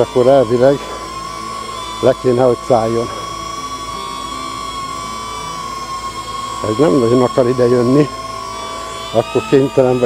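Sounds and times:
drone propellers whining: 0.0 - 10.0.

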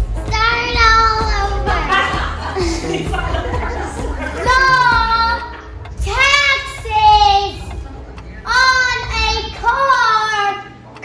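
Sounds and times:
girl singing sliding notes: 4.1 - 10.8.

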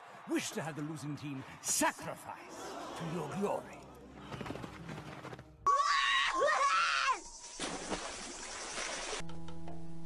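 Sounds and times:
cartoon character screaming: 5.7 - 7.2.

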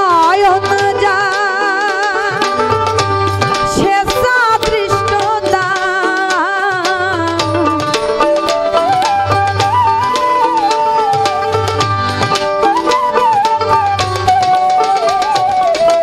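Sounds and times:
hand drum pattern: 0.0 - 16.0
plucked strings: 0.0 - 16.0
wavering lead melody: 0.6 - 16.0.

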